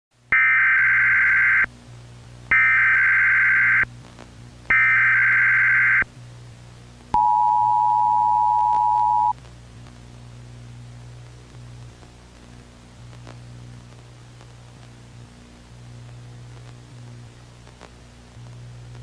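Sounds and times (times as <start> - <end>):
faint low hum: 0.3 - 19.0
two-tone attention signal: 7.2 - 9.3.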